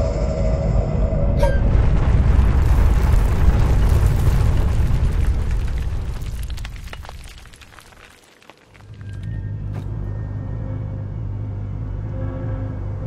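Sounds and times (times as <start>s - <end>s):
loud deep rumble with crackles: 1.6s - 7.9s.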